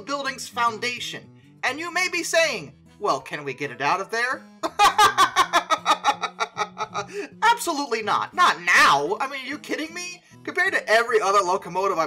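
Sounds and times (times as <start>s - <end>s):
man laughing heartily: 4.6s - 7.4s.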